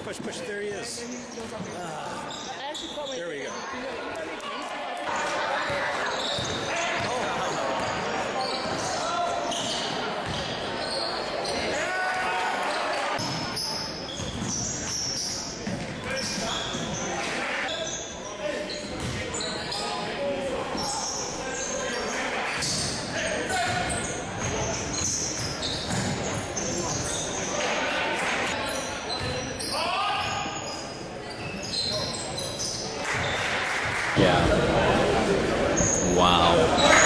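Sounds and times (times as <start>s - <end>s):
sneakers squeaking: 0.1s - 11.9s, 12.6s - 33.6s, 35.4s - 37.0s.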